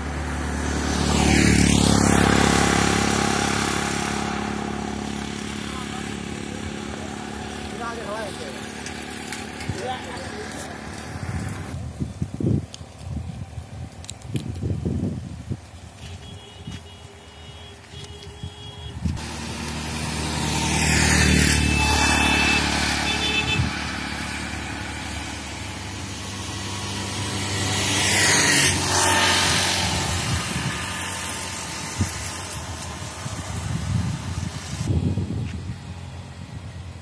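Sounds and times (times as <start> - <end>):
vehicles passing by: 0.0 - 37.0.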